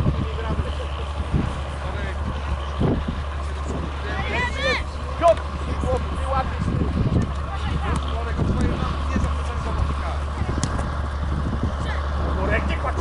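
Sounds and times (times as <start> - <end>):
distant voices: 0.0 - 13.0
steady low rumble: 0.0 - 13.0.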